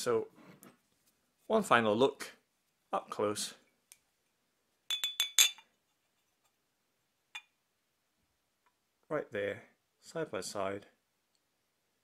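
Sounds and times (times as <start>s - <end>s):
ceramic mugs clinking: 4.9s - 5.8s, 7.4s - 7.6s.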